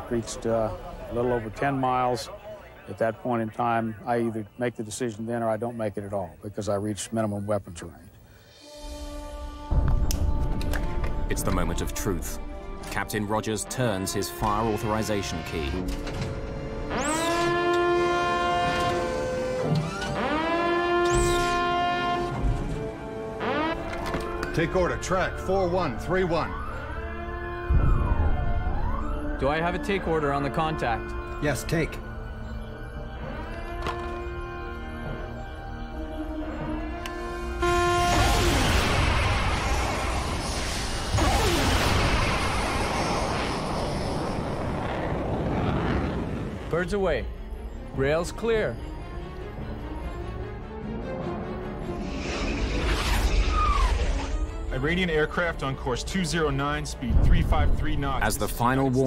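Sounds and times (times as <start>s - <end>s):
dramatic music: 8.4s - 59.0s
launcher machinery whining: 14.2s - 31.4s, 32.0s - 46.9s
rocket exhaust rushing: 37.7s - 46.8s.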